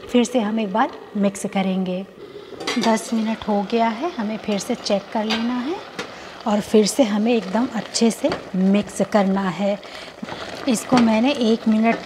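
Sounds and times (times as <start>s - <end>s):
woman talking: 0.0s - 2.1s, 2.7s - 9.8s, 10.6s - 12.0s
wet stirring and bubbling in a pot: 0.0s - 12.0s.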